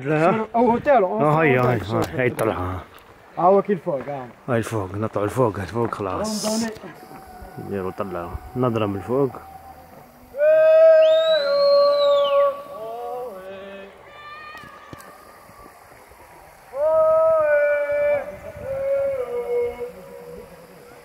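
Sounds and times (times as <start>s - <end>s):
fainter shorter call: 6.2s - 21.0s
person shouting with echo: 8.4s - 11.2s.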